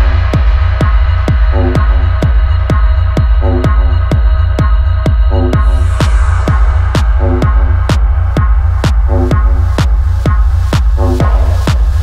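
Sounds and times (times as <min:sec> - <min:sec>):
kick drum: 0:00.0 - 0:12.0
pulsing deep bass: 0:00.0 - 0:12.0.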